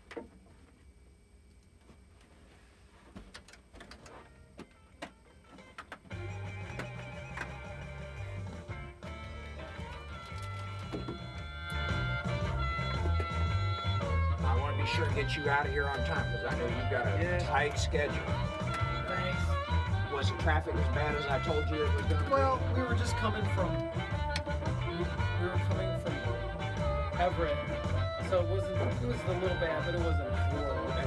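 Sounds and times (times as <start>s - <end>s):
blues song with electric guitar: 6.1s - 31.0s.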